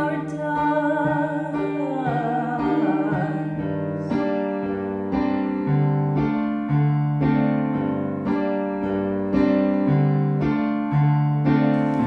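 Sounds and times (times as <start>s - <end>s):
piano chords: 0.0s - 12.0s.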